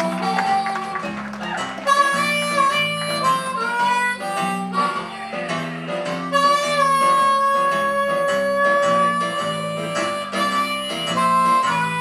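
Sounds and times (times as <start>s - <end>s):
blues harmonica solo: 0.0s - 12.0s
guitar and bass accompaniment: 0.0s - 12.0s.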